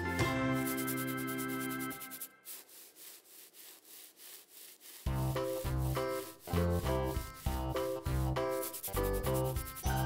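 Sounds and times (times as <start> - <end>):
marker scraping textured surface: 0.6 - 10.0.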